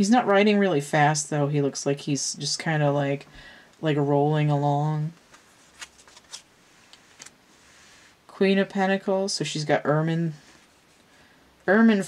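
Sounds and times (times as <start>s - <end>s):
cards clicking and rustling: 5.3s - 7.4s.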